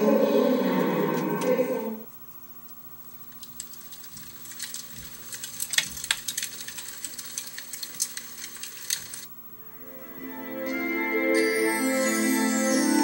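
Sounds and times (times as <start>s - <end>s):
campfire crackling: 3.3s - 9.3s.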